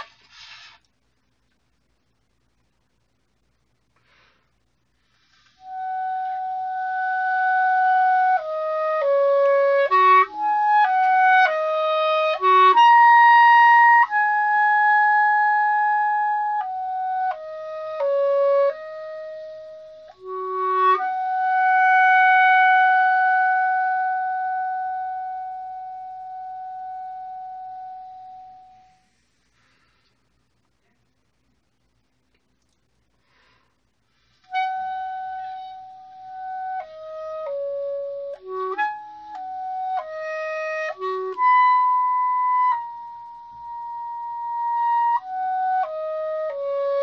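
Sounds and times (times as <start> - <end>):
solo clarinet melody: 0.0 - 0.9, 5.4 - 29.1, 34.4 - 47.0.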